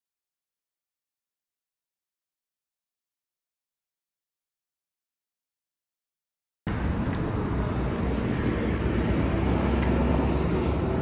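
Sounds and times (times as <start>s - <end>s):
street traffic rumble: 6.7s - 11.0s.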